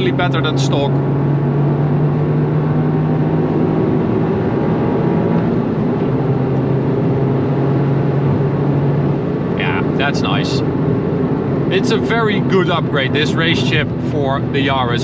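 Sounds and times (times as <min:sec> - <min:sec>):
car engine drone accelerating: 0:00.0 - 0:15.0
road and wind noise: 0:00.0 - 0:15.0.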